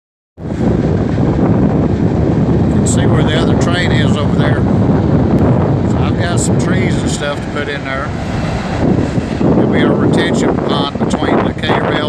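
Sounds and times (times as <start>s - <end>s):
wind buffeting microphone: 0.4s - 12.0s.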